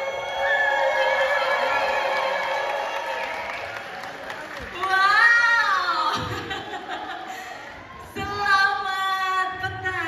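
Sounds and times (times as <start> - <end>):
crowd cheering and applause: 0.0 - 6.9.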